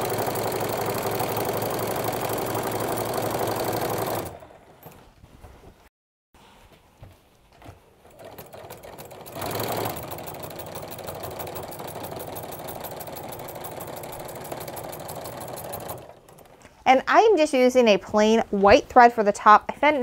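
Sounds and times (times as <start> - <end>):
sewing machine stitching: 0.0 - 5.1, 8.0 - 16.8.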